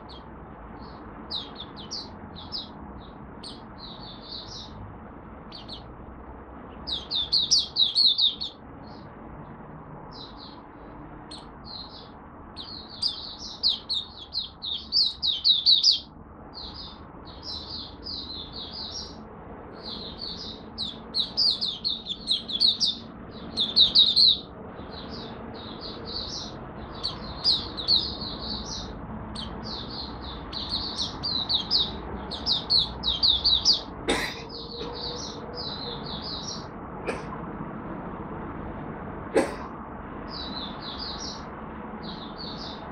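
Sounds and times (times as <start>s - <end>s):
bird singing high twittering notes: 0.0s - 4.8s, 5.5s - 5.9s, 6.8s - 9.1s, 11.3s - 19.2s, 19.8s - 33.9s.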